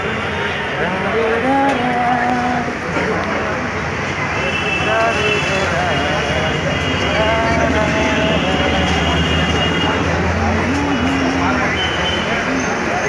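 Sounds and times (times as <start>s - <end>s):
many voices chattering: 0.0s - 13.0s
traffic rumble: 0.0s - 13.0s.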